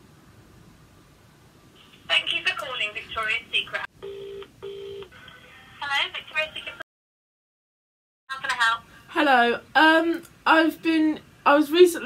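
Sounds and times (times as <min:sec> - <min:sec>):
person speaking on speakerphone: 0:02.1 - 0:03.9, 0:05.2 - 0:06.8, 0:08.3 - 0:08.8
phone ringing tone: 0:04.0 - 0:05.2.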